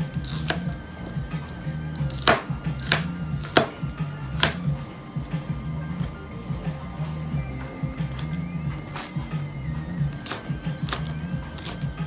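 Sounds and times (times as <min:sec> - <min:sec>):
cleaver chopping on plastic board: 0:00.1 - 0:04.8, 0:10.1 - 0:12.0.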